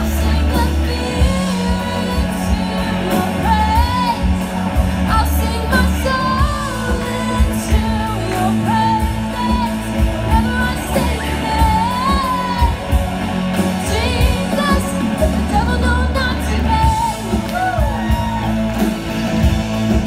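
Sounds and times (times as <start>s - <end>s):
person singing: 0.0s - 18.9s
bass guitar: 0.0s - 20.0s
drum kit: 0.0s - 20.0s
electric guitar: 0.0s - 20.0s.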